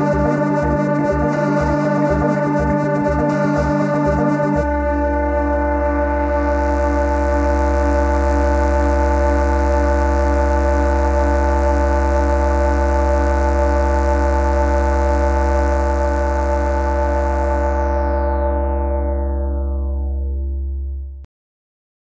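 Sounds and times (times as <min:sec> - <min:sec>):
deep bass drone: 0:00.0 - 0:21.3
pulsing synth note: 0:00.0 - 0:21.3
sustained synthesizer chord: 0:00.0 - 0:21.3.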